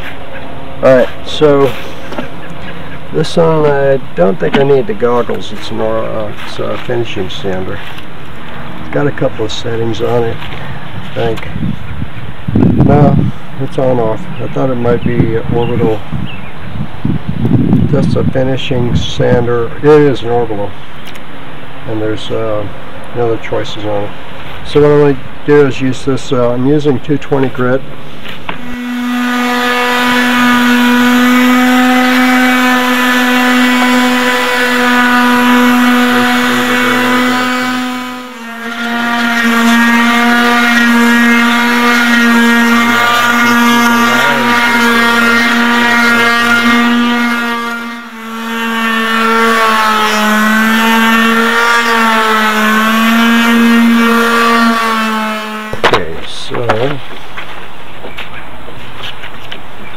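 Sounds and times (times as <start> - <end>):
orbital sander buzzing: 0.0 - 59.8.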